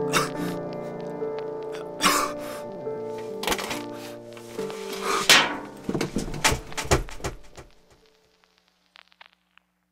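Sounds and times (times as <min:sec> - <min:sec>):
loud crash: 0:05.2 - 0:07.0
sharp knocks and thuds: 0:05.3 - 0:07.9.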